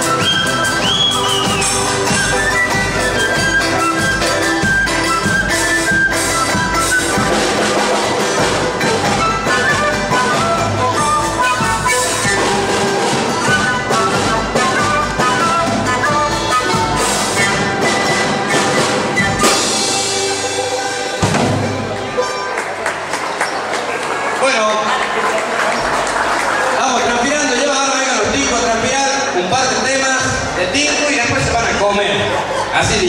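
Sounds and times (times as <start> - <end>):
wooden flute: 0.0 - 22.7
strummed strings: 0.0 - 22.9
panpipes: 0.0 - 23.0
percussion: 0.0 - 24.4
applause: 22.3 - 27.2.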